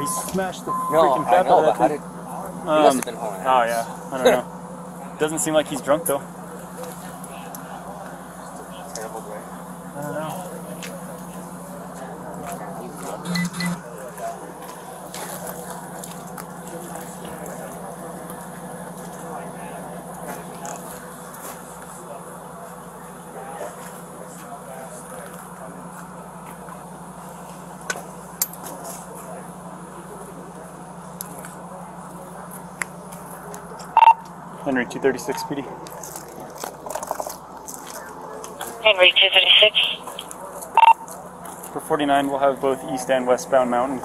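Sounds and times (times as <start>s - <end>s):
faint distant voices: 0.0s - 44.0s.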